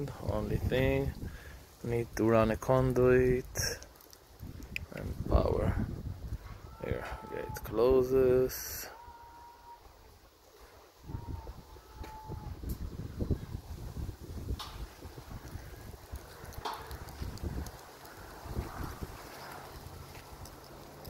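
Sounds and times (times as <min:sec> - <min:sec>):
wind buffeting microphone: 0:00.0 - 0:02.2, 0:04.3 - 0:07.8, 0:10.8 - 0:21.0.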